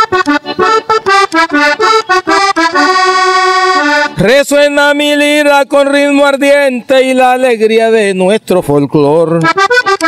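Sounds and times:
button accordion solo: 0:00.0 - 0:04.5, 0:09.3 - 0:10.0.

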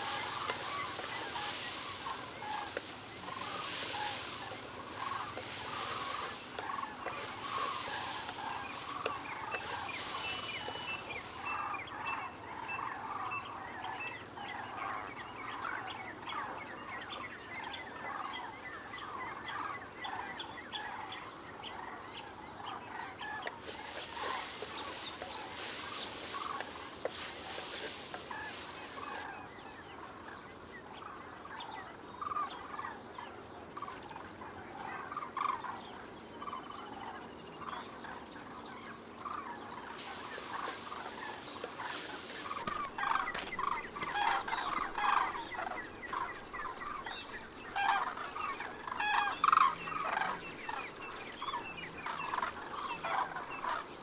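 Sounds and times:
okra sizzling in a clay pot: 0:00.0 - 0:11.7, 0:22.1 - 0:31.0, 0:34.7 - 0:45.6.

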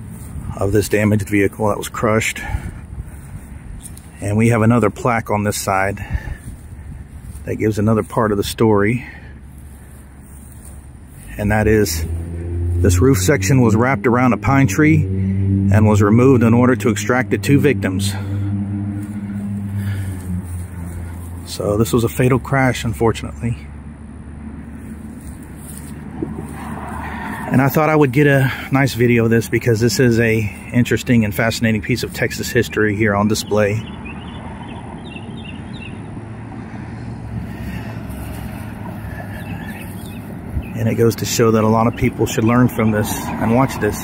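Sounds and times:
vehicle engine humming: 0:00.0 - 0:44.0.

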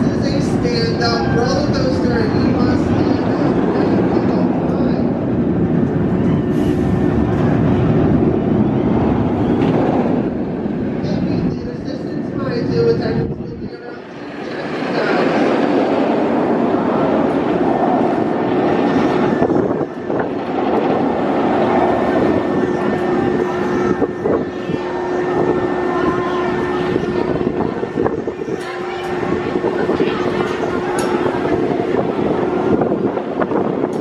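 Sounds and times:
roller coaster wheels rumbling on rail: 0:00.0 - 0:34.0
steady hum: 0:00.0 - 0:34.0.

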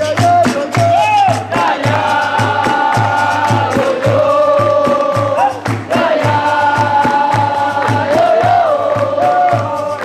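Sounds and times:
steady drum beat: 0:00.0 - 0:10.0
group singing in chorus: 0:00.4 - 0:10.0.

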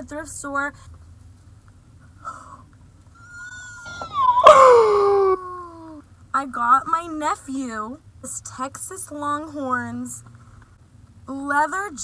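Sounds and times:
woman's falling ooh vocal: 0:03.2 - 0:06.0.

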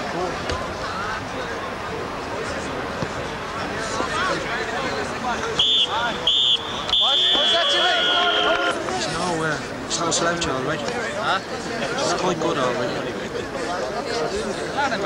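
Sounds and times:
spectators chattering: 0:00.0 - 0:15.0
referee's whistle blasts: 0:05.5 - 0:08.8.

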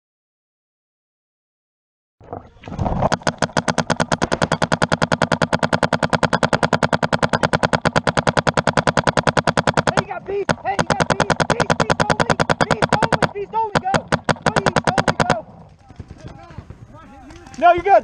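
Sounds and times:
paintball marker firing: 0:02.8 - 0:18.0.

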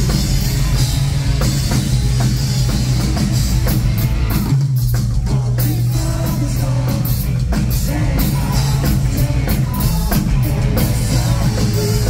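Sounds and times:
rock band playing live: 0:00.0 - 0:12.0.

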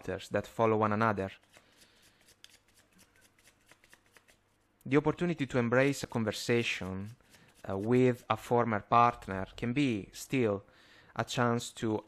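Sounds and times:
cards being shuffled by hand: 0:01.4 - 0:04.5.

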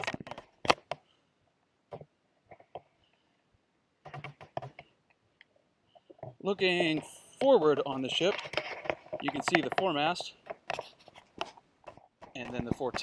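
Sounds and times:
small taps and rubs: 0:05.9 - 0:13.0.

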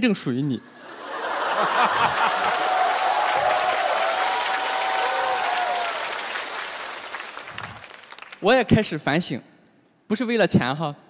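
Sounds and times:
crowd laughing: 0:00.6 - 0:04.2
studio audience applauding: 0:01.0 - 0:08.6.

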